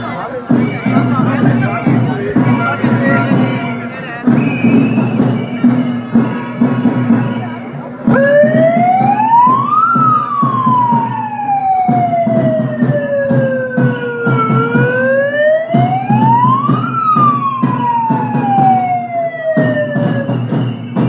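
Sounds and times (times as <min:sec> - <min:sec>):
siren wailing: 0:08.1 - 0:21.0.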